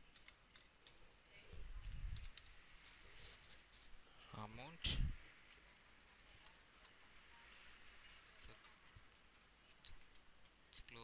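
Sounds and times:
faint computer mouse clicks: 1.8s - 3.0s.

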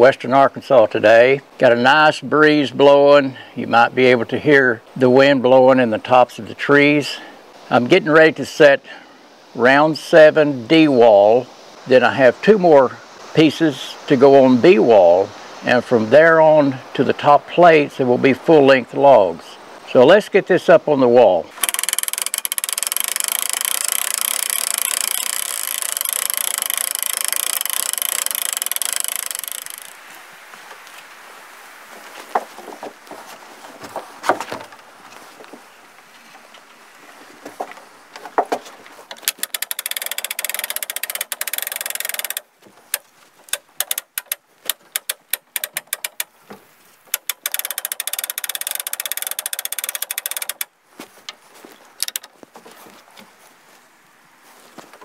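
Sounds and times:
log and rigging knocking: 21.5s - 31.0s, 31.9s - 53.3s
motor-driven winch running: 21.6s - 30.0s, 39.1s - 46.3s, 47.1s - 50.7s, 52.0s - 52.3s.

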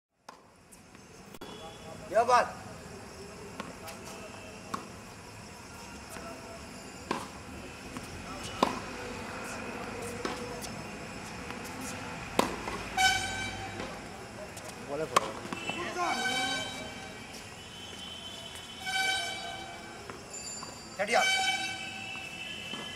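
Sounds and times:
tennis ball struck by rackets: 7.1s - 10.7s, 11.5s - 14.1s, 15.1s - 15.8s
horn sounding: 12.9s - 13.9s, 15.4s - 19.9s, 21.1s - 22.9s.

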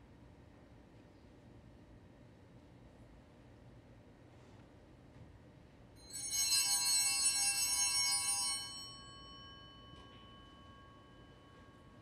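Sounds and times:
altar bells jangling: 6.0s - 12.0s.

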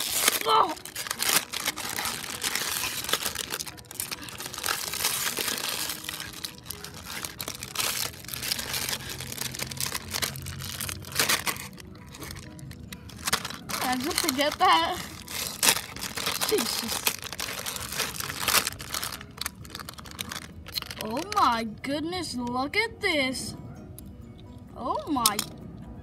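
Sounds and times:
foil wrapper crinkling: 0.0s - 21.6s.

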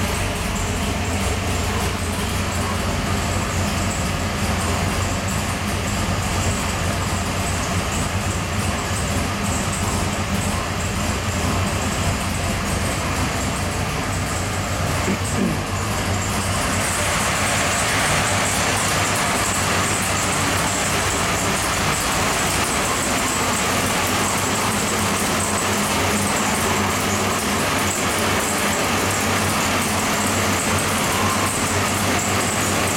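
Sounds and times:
engine running steadily: 0.0s - 32.9s.

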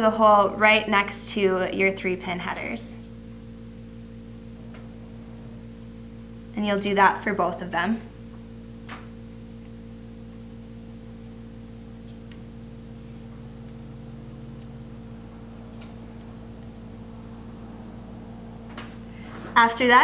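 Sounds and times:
electrical hum: 0.0s - 20.0s.

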